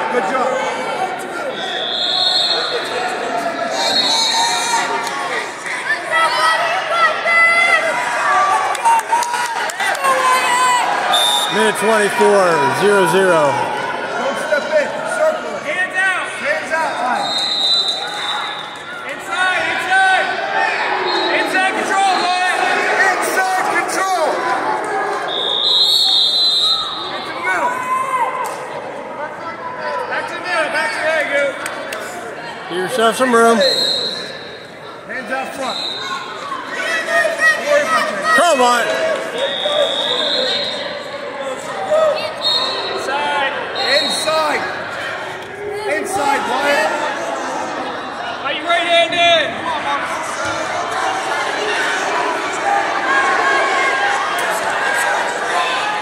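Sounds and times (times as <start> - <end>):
spectators and coaches shouting: 0.0 - 31.4, 32.1 - 56.0
crowd chatter: 0.0 - 56.0
people calling out: 11.1 - 13.8.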